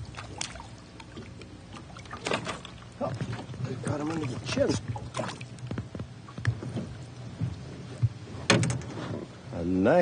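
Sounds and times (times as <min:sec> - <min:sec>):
water splashing: 0:00.0 - 0:08.1.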